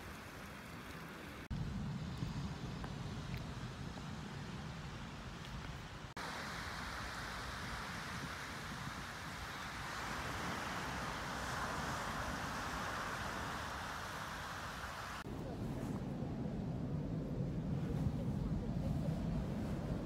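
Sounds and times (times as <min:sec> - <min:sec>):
wind rumbling on microphone: 0:00.0 - 0:20.0
small waves washing onto shore: 0:06.2 - 0:15.3.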